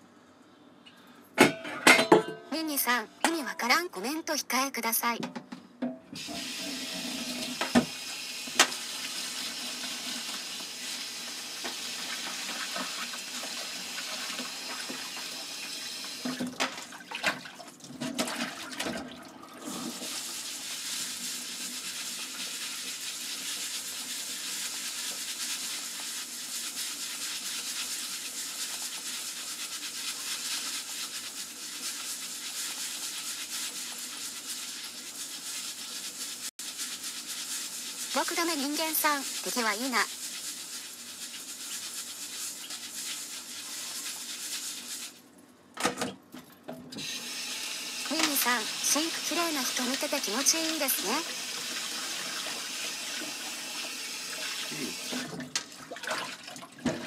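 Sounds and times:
tap water running into sink: 6.1s - 26.2s, 45.8s - 57.0s
knocks and splashes: 16.2s - 19.3s, 55.1s - 57.0s.

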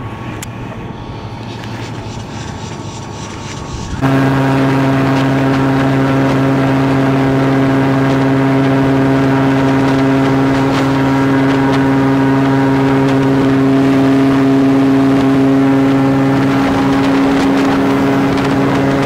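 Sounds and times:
airboat engine and propeller: 0.0s - 19.0s.

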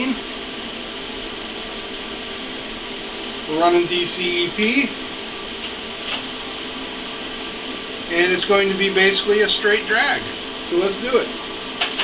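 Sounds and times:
faint constant whine: 0.0s - 12.0s
fan humming: 0.0s - 12.0s.

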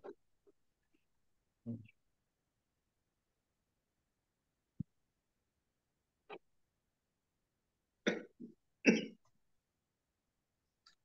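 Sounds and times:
person coughing: 8.9s - 9.2s.

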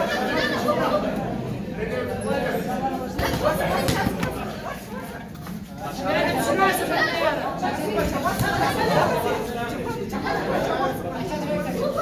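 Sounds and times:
onlookers chattering: 0.0s - 12.0s.

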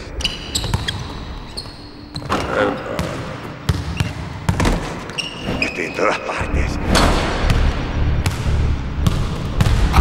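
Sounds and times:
shoe squeak: 0.2s - 2.7s, 3.9s - 4.2s, 5.1s - 6.0s
basketball bouncing on court: 0.5s - 5.3s, 7.4s - 10.0s.

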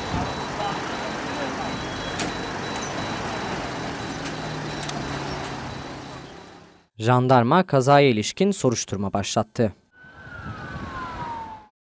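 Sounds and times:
roadside traffic: 0.0s - 6.9s.

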